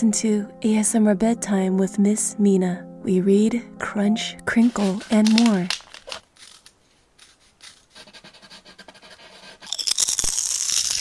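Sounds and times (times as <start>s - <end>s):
paper being folded and creased: 4.5s - 9.6s, 10.2s - 11.0s.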